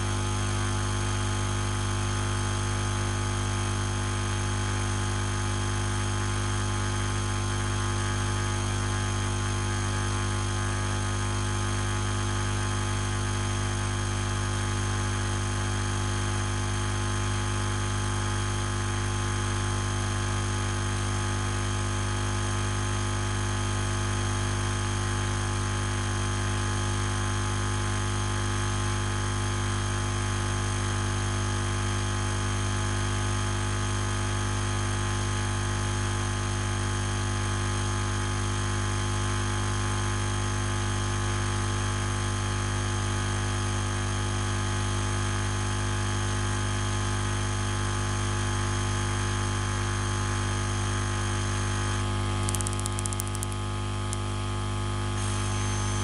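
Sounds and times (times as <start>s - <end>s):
electrical hum and hiss: 51.9s - 54.2s.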